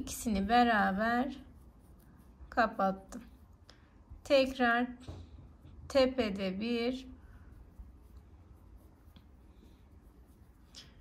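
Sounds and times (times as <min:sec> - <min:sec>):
low room hum: 0:00.0 - 0:11.0
rustling of yarn: 0:00.0 - 0:11.0.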